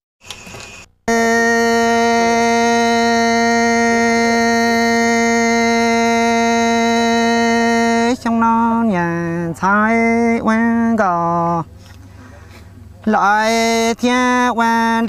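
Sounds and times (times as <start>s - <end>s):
steady electronic tone: 0.3s - 8.2s.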